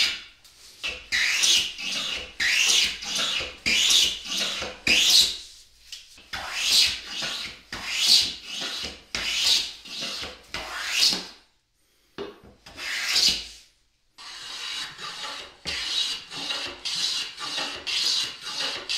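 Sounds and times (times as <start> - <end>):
hand plane swishing on wood: 6.4 - 11.2, 14.2 - 18.9.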